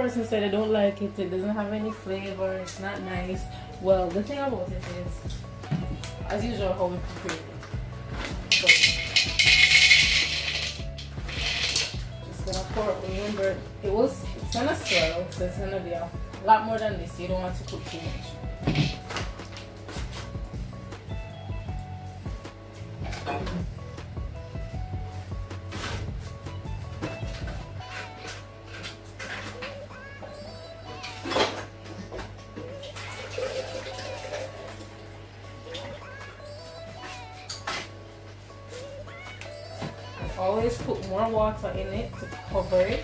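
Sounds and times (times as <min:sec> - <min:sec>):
background music: 0:00.0 - 0:43.0
kitchen clicks and knocks: 0:08.2 - 0:12.0, 0:18.6 - 0:19.3
water pouring: 0:32.9 - 0:35.1.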